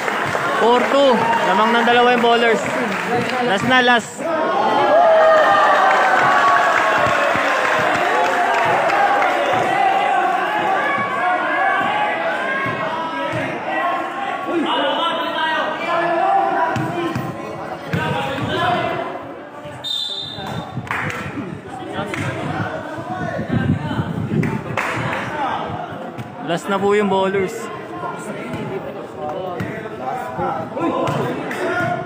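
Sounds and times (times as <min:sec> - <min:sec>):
spectators talking and shouting: 0:00.0 - 0:32.0.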